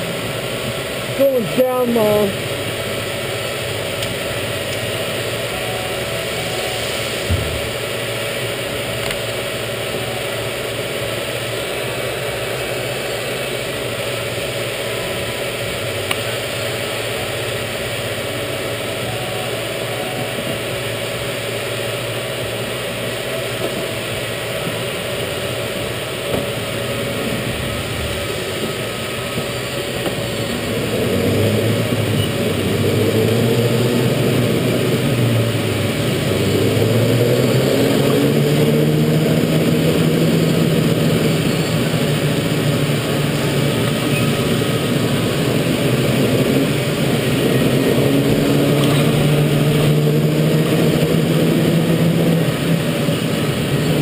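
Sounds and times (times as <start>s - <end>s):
go-kart engines idling: 0.0s - 54.0s
go-karts pulling away: 0.0s - 54.0s.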